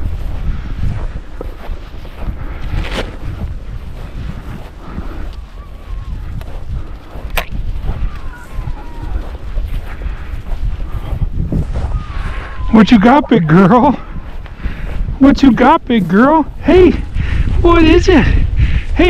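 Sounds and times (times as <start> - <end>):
walking through tall dry grass: 0.0 - 19.0
wind buffeting microphone: 0.0 - 19.0.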